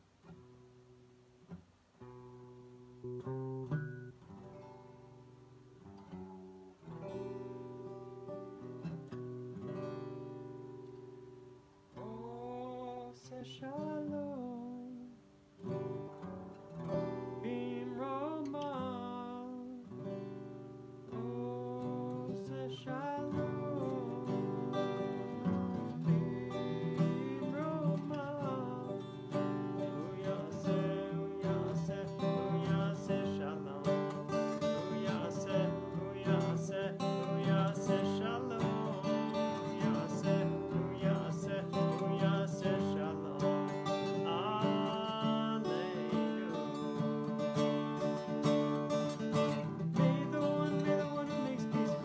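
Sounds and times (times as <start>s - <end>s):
acoustic guitar: 0.0s - 52.0s
man singing: 12.0s - 15.3s, 17.2s - 20.1s, 21.1s - 47.9s, 49.4s - 52.0s.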